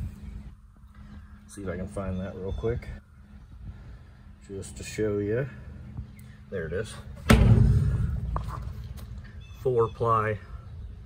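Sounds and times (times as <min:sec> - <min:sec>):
sudden thump: 0:07.3 - 0:08.8
low rumble: 0:07.3 - 0:09.6.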